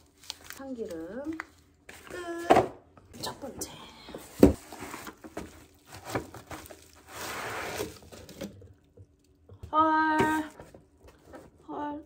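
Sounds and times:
packaging rustling: 0:00.0 - 0:02.1, 0:04.6 - 0:08.6.

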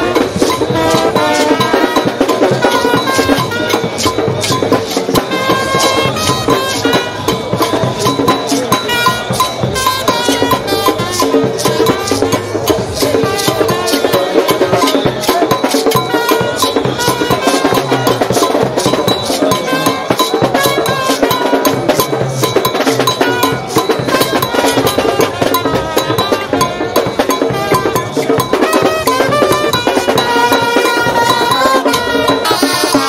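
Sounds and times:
marching brass band playing: 0:00.0 - 0:33.0.

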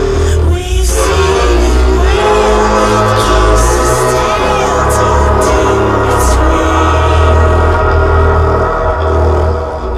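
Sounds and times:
dark electronic music: 0:00.0 - 0:09.9.

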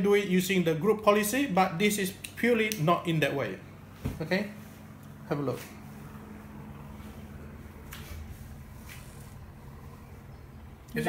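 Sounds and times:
computer fan hum: 0:00.0 - 0:11.0.

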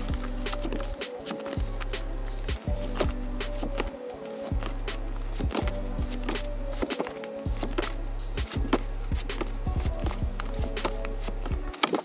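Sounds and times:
background music: 0:00.0 - 0:12.0
photo prints flipping: 0:00.2 - 0:02.0, 0:02.8 - 0:08.0, 0:08.7 - 0:12.0.

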